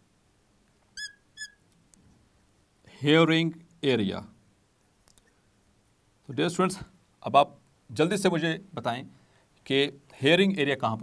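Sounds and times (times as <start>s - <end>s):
marker squeaking on glass: 0.9s - 1.6s.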